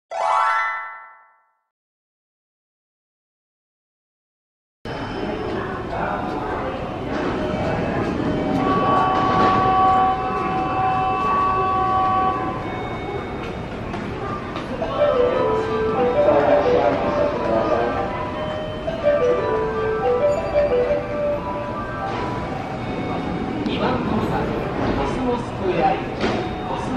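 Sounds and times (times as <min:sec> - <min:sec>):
high-pitched railway tones: 0:04.9 - 0:26.9
railway rumble: 0:05.2 - 0:26.9.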